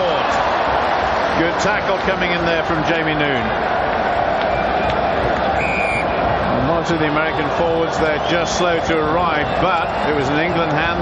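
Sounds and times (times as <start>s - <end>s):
stadium crowd noise: 0.0s - 11.0s
referee's whistle blast: 5.6s - 6.2s.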